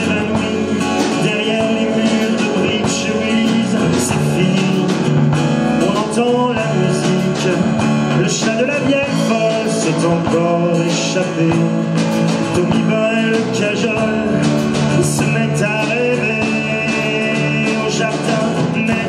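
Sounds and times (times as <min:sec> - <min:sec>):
drum kit: 0:00.0 - 0:19.0
lead vocal melody: 0:00.0 - 0:19.0
strummed acoustic guitars: 0:00.0 - 0:19.0.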